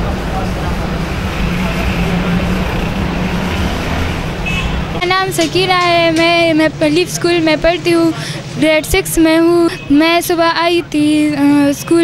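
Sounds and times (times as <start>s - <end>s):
vehicle engines humming: 0.0s - 12.0s.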